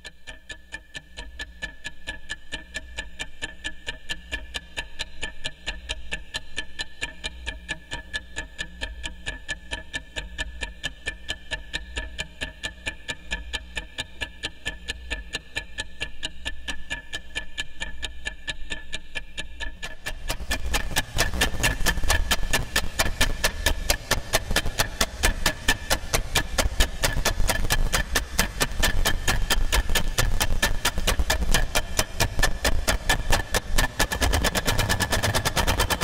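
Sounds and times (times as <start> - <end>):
kitchen timer ticking: 19.9 - 36.0.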